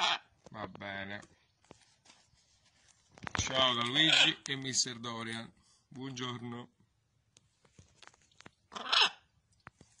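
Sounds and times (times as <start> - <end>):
macaw harsh call: 3.9 - 4.4.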